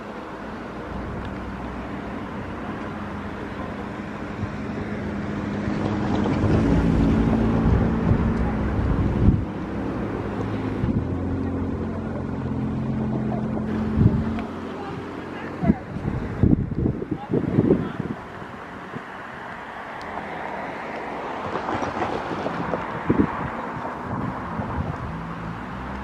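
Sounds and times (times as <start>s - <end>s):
vehicle low hum: 0.0s - 26.0s
wind rumbling on microphone: 0.9s - 26.0s.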